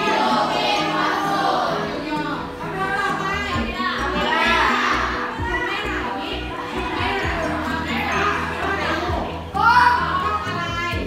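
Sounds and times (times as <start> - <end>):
background music: 0.0 - 11.0
students chattering and calling out: 0.0 - 11.0.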